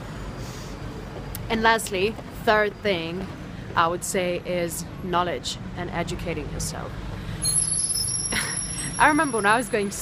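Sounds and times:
heavy vehicle engine rumbling: 0:05.7 - 0:10.0.

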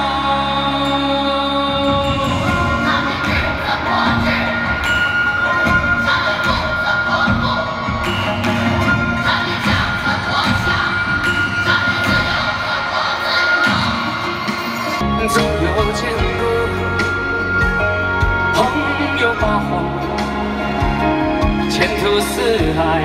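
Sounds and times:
band instrumental music: 0:00.0 - 0:23.0
crowd cheering and screaming: 0:00.0 - 0:23.0.

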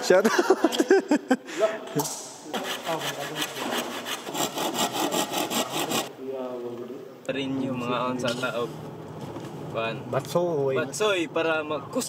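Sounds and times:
saw scraping a board: 0:02.5 - 0:06.1.

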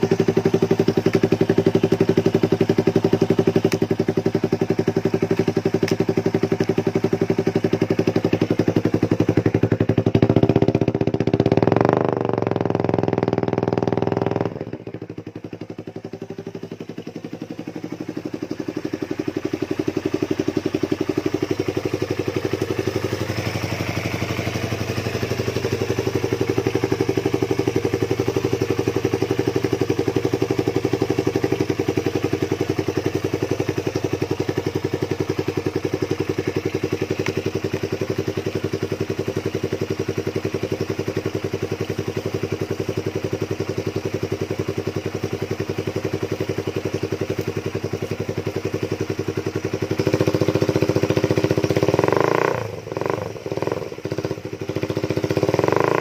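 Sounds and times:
motorcycle engine idling: 0:00.0 - 0:56.0.

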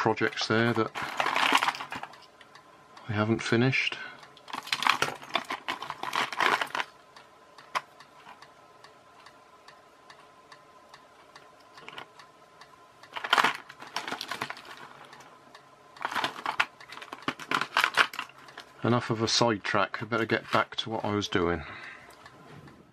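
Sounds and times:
faint steady whine: 0:00.0 - 0:22.9
plastic tub of parts rattling: 0:00.6 - 0:02.2, 0:04.5 - 0:06.9, 0:13.1 - 0:14.9, 0:16.0 - 0:18.3.

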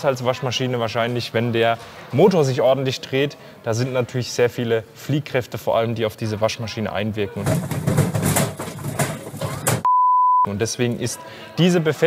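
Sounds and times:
washing machine banging on spin: 0:07.4 - 0:09.9
high test-tone beep: 0:09.8 - 0:10.5.

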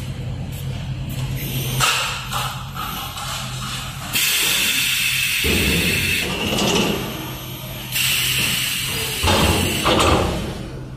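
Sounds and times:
machine hissing: 0:04.0 - 0:10.6.

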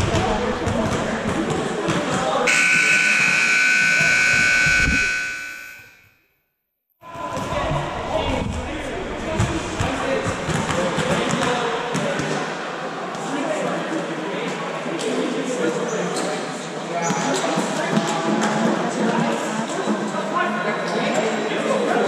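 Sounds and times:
people chattering: 0:00.0 - 0:05.6, 0:07.0 - 0:22.0
scoreboard buzzer blast: 0:02.5 - 0:06.1.

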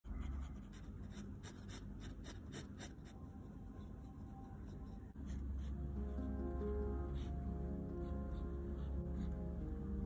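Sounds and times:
pen nib scratching on paper: 0:00.1 - 0:06.2.

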